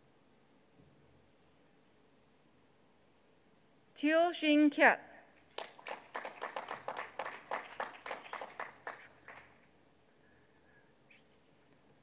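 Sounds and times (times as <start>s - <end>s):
people clapping in a hall: 5.5s - 9.7s.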